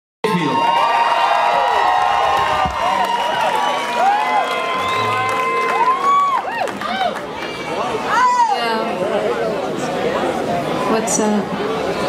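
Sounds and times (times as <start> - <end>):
crowd cheering and whooping: 0.3 - 8.8.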